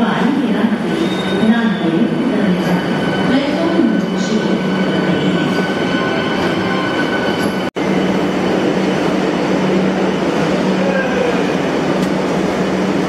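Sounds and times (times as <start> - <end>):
train low hum: 0.0 - 13.0
train rolling rumble: 0.0 - 13.0.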